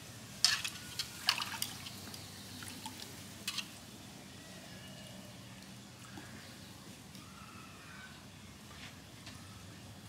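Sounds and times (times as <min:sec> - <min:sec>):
water splashing in a metal pot: 0:00.4 - 0:03.8.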